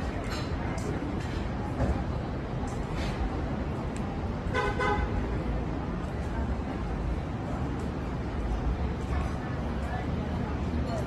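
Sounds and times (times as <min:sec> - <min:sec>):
low city street noise: 0:00.0 - 0:11.0.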